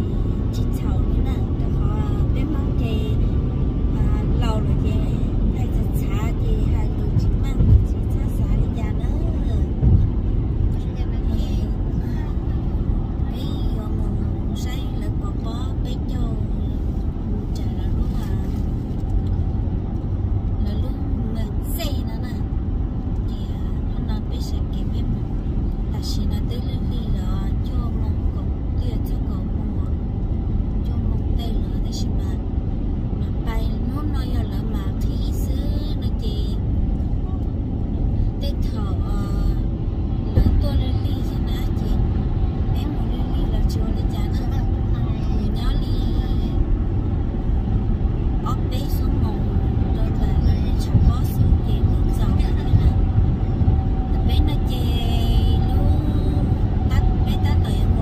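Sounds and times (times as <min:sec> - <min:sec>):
people talking: 0:00.0 - 0:03.3, 0:03.9 - 0:10.0, 0:10.7 - 0:16.7, 0:17.3 - 0:18.6, 0:20.6 - 0:22.4, 0:23.2 - 0:25.2, 0:25.9 - 0:30.0, 0:30.8 - 0:32.4, 0:33.2 - 0:36.6, 0:37.2 - 0:37.5, 0:38.4 - 0:42.0, 0:42.7 - 0:46.7, 0:48.4 - 0:53.1, 0:54.1 - 0:58.0
road and engine rumble: 0:00.0 - 0:58.0.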